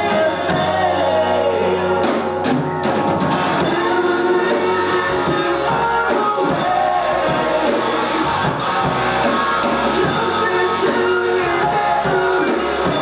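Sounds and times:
man singing: 0.0s - 2.3s, 3.6s - 8.4s, 9.9s - 13.0s
bass guitar: 0.0s - 13.0s
drum kit: 0.0s - 13.0s
electric guitar: 0.0s - 13.0s.

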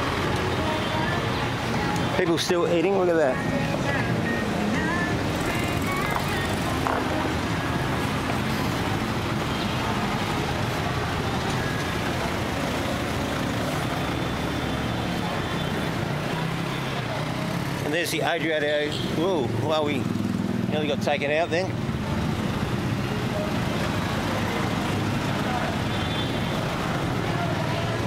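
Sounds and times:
car engines running: 0.0s - 28.0s
road noise hum: 0.0s - 28.0s.

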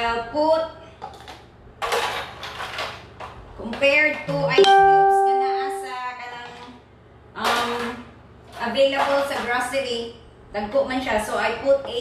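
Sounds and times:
single musical note ringing: 4.6s - 6.2s.

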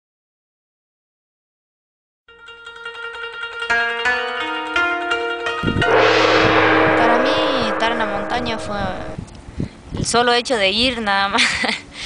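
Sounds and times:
gong-like crash: 5.6s - 9.3s
held low tone: 5.6s - 9.3s.

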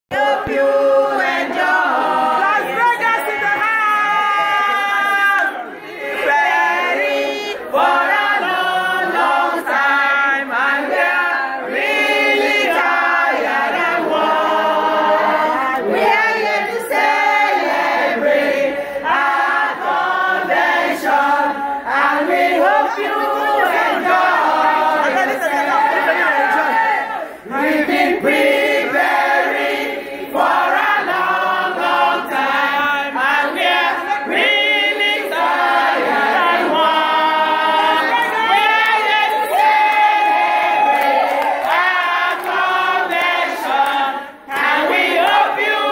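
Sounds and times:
women singing in unison: 0.1s - 45.9s.

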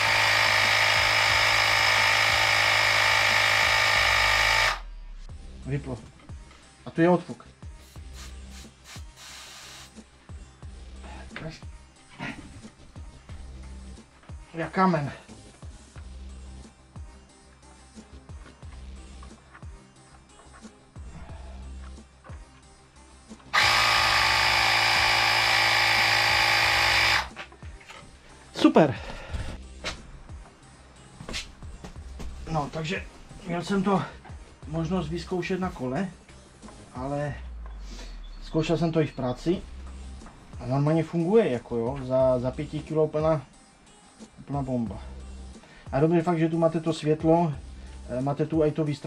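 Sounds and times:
air compressor running: 0.0s - 4.9s, 7.8s - 10.0s, 23.5s - 27.4s
tyre inflator buzzing: 0.0s - 5.0s, 7.8s - 10.0s, 23.5s - 27.5s.

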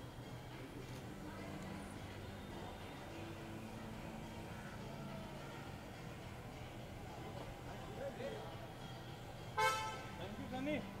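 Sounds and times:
vehicle horn toot: 9.6s - 10.1s.

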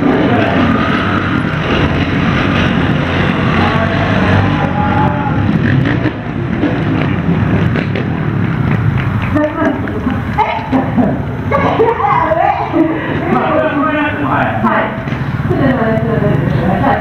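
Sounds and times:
motorcycle engines revving: 0.0s - 17.0s.

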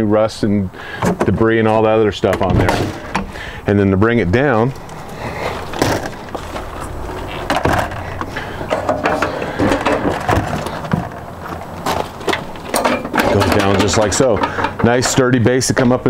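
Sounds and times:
metal steps clicking and rattling: 0.9s - 3.5s, 4.4s - 16.0s.

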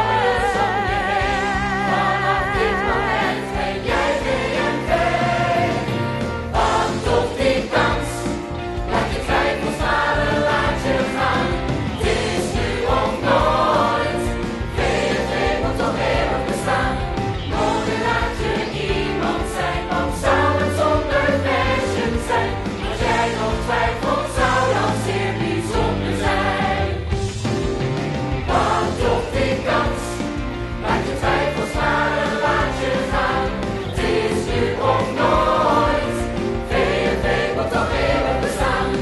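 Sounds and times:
choir singing: 0.0s - 27.3s, 28.4s - 39.0s
instrumental accompaniment: 0.0s - 39.0s.

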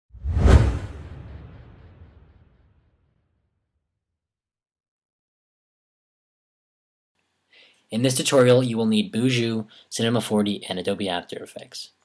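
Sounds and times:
whoosh sound effect: 0.1s - 2.8s
deep low boom: 0.3s - 3.2s.

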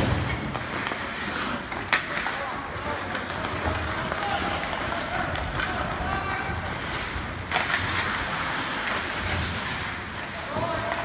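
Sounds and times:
skates scraping on ice: 0.0s - 11.0s.

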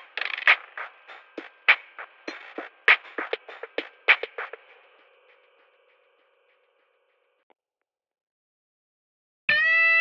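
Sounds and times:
lo-fi drum machine beat: 0.0s - 6.1s.

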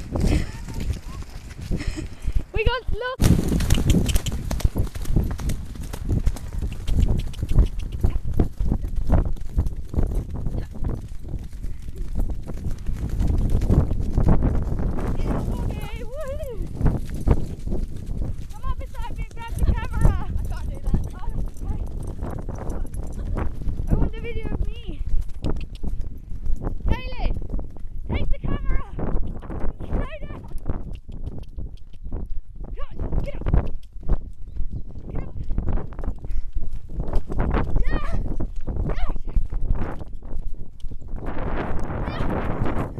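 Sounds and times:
horse hooves thudding on dirt: 0.0s - 42.9s.

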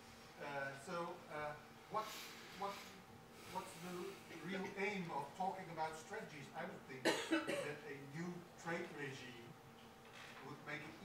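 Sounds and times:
person coughing: 7.0s - 7.8s.

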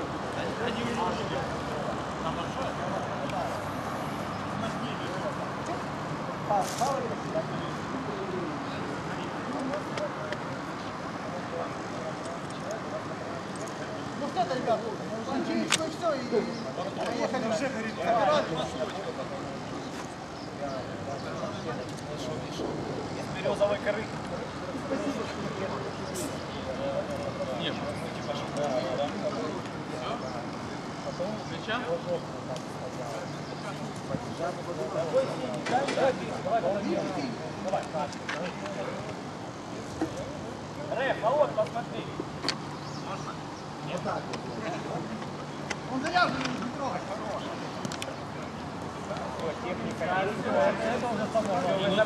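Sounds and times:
city traffic hum: 0.0s - 52.0s
distant people talking and calling: 0.0s - 52.0s
steady background noise: 0.0s - 52.0s.

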